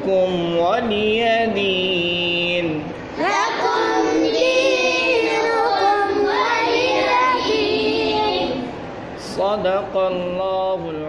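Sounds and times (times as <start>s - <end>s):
children chanting: 3.2s - 8.8s.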